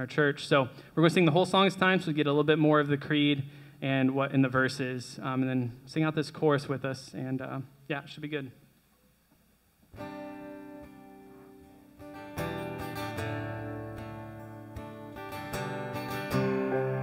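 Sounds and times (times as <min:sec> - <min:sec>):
acoustic guitar chord strummed: 0:10.0 - 0:17.0
band playing: 0:10.0 - 0:17.0.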